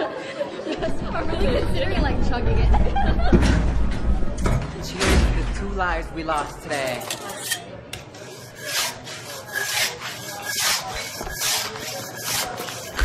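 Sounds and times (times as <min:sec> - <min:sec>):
rasping rubbing strokes: 0:07.3 - 0:13.0.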